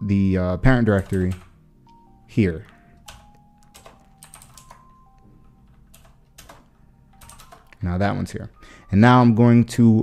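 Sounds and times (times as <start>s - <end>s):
keyboard typing clicks: 0.9s - 2.0s, 2.6s - 7.9s.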